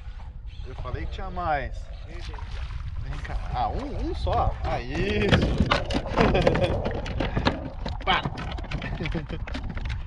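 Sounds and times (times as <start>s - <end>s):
wind rumble on microphone: 0.0s - 10.0s
sharp knocks and clicks: 4.3s - 10.0s.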